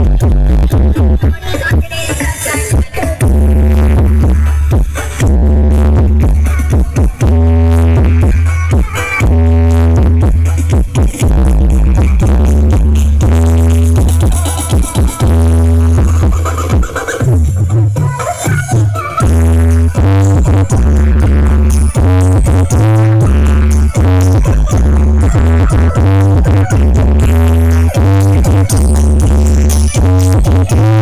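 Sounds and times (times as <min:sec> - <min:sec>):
electronic dance music with deep bass: 0:00.0 - 0:31.0.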